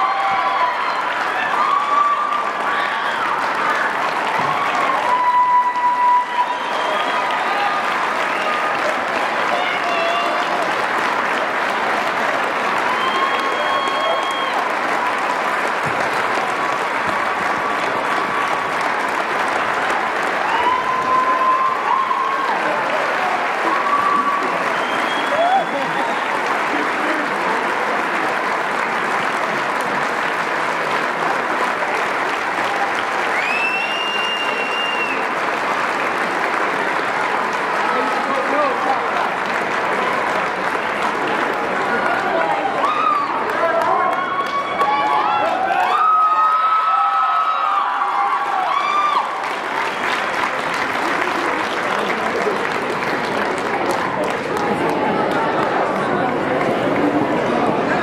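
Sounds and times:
crowd cheering: 0:00.0 - 0:58.0
large crowd clapping: 0:00.0 - 0:58.0.

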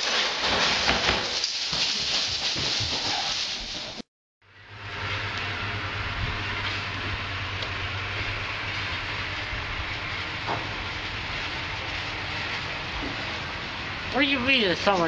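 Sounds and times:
low hum: 0:04.4 - 0:15.0.

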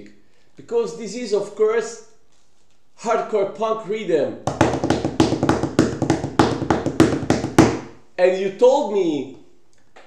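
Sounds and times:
rapid hand tapping: 0:04.4 - 0:08.0.

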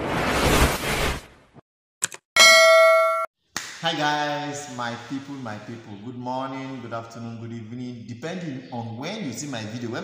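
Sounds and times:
bell ding: 0:02.4 - 0:03.3.

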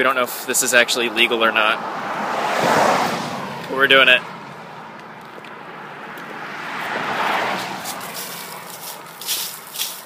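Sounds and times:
car passing on road: 0:00.3 - 0:10.0.

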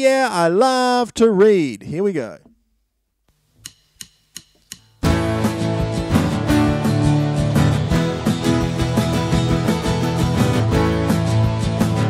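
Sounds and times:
sharp count-in clicks: 0:03.6 - 0:05.0
strummed acoustic guitar: 0:05.0 - 0:12.0.

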